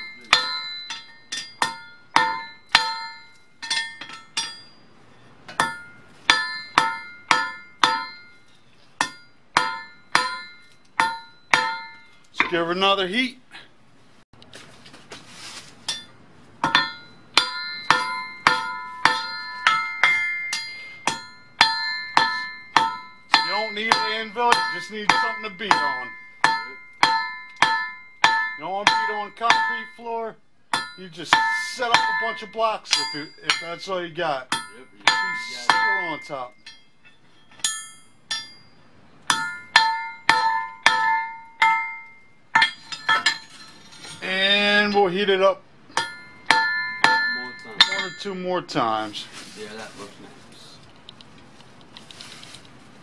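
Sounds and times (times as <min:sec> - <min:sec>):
hammer ringing on steel anvil: 0:00.0 - 0:04.9, 0:05.5 - 0:08.4, 0:09.0 - 0:12.6, 0:15.9 - 0:30.1, 0:30.7 - 0:44.8, 0:45.9 - 0:48.4.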